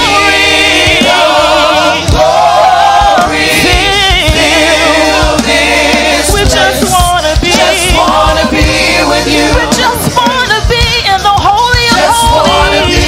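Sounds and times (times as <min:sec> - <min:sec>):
choir singing with vibrato: 0:00.0 - 0:13.0.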